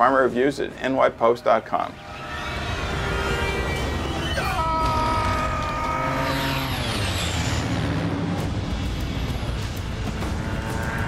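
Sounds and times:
small plane engine whooshing past: 6.0 - 11.0.

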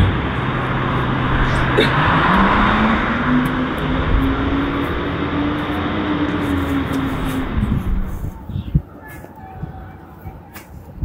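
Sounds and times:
faint hum rising in pitch: 0.0 - 9.0
rushing vehicle traffic: 0.0 - 11.0.

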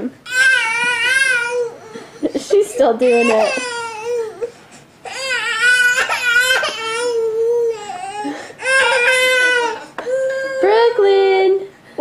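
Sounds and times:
baby crying: 0.2 - 10.9.

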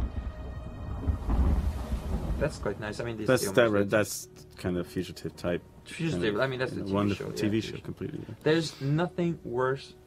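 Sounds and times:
thunder rumbling: 0.0 - 3.4
rain falling: 0.0 - 3.5.

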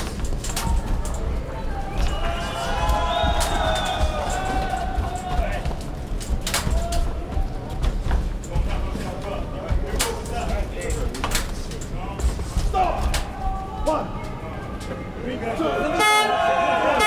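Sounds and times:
arena crowd rumble: 0.0 - 17.0
voices shouting: 0.5 - 7.9, 12.6 - 17.0.

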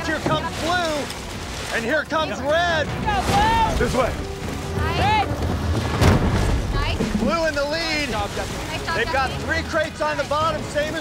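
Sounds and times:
low rumble of sled on rollers: 1.8 - 11.0
people shouting: 2.3 - 4.1.

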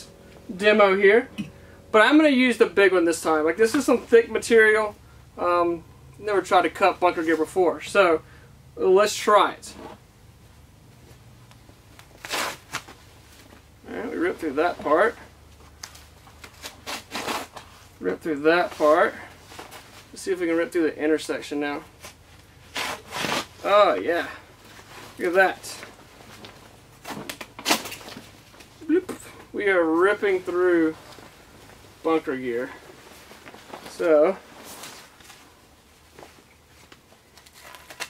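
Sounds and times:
heavy fabric rustling: 10.9 - 37.9
blade ripping thick fabric: 12.2 - 12.9, 16.6 - 17.6, 22.7 - 23.6.

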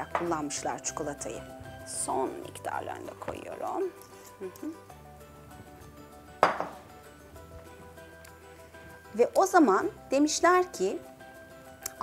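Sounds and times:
soft background music: 0.0 - 12.0
kitchenware clinking: 6.4 - 6.9.

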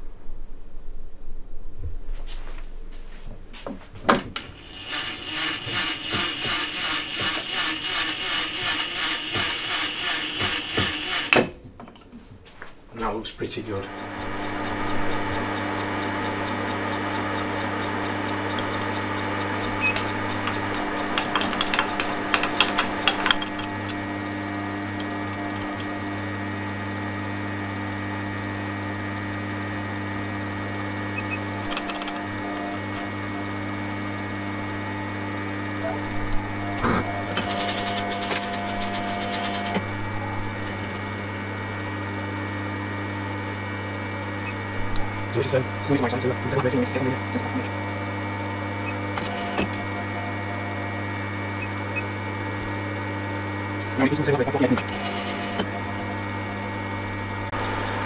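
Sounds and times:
milling machine motor hum: 4.3 - 11.4, 13.7 - 58.0.

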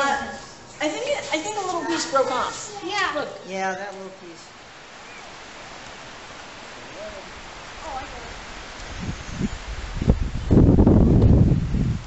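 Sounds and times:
outdoor ambience hiss: 0.0 - 12.0.

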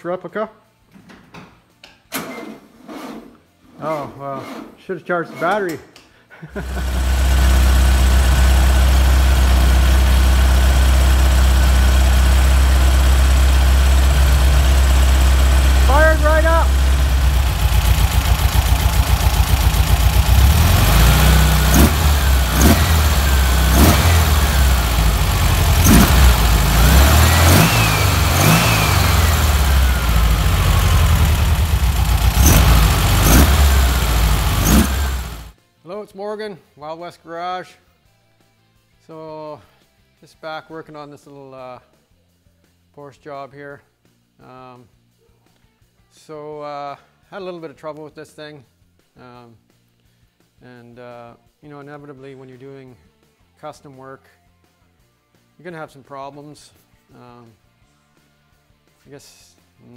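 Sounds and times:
air-cooled car engine running: 6.6 - 35.5.

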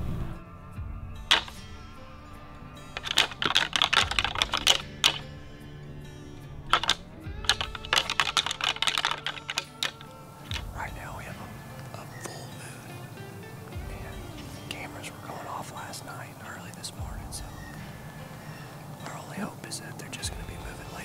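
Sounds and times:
background music: 0.0 - 21.0
rapid clicking and clattering: 1.3 - 1.6, 3.0 - 5.3, 6.7 - 10.8.

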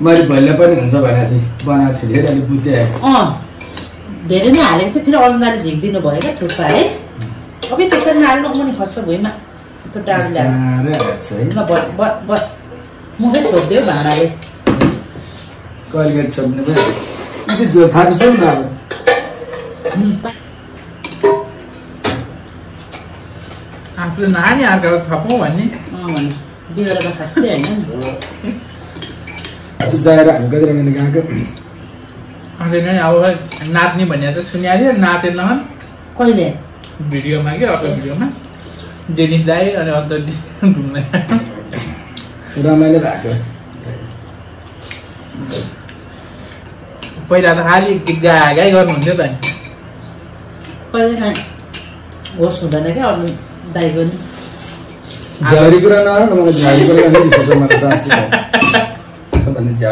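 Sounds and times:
cutlery clinking against dishes: 10.9 - 12.6, 16.0 - 20.2, 21.0 - 22.2, 25.2 - 29.8, 58.5 - 59.0
cutlery clinking on glass bowls: 58.5 - 59.0.

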